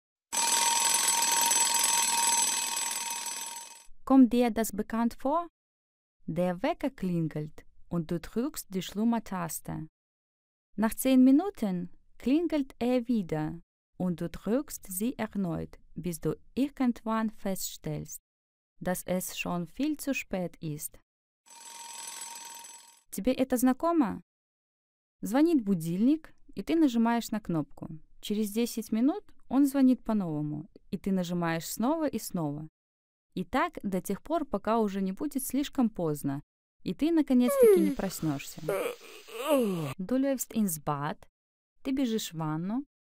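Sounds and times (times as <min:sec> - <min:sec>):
bell alarm clock ringing: 0:00.3 - 0:03.8, 0:21.5 - 0:23.0.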